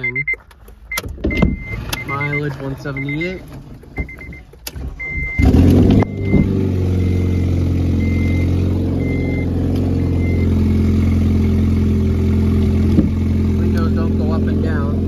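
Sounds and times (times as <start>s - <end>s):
dashboard warning chime beeping: 0.0s - 10.6s
car engine starting and idling: 0.0s - 15.0s.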